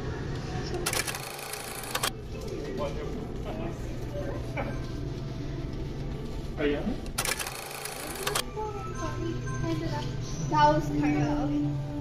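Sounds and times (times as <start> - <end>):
camera shutter clicking: 0.8 - 2.1, 7.1 - 8.4.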